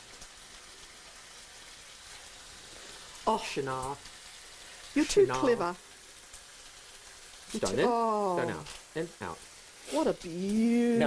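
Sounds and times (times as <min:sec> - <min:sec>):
food frying in a pan: 0:00.0 - 0:11.0.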